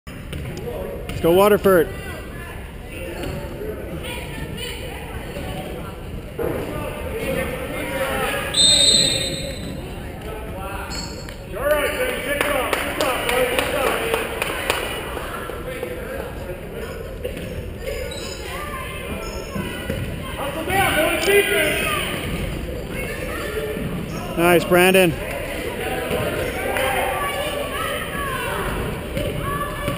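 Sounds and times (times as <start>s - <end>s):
whistle blast: 8.5s - 9.7s.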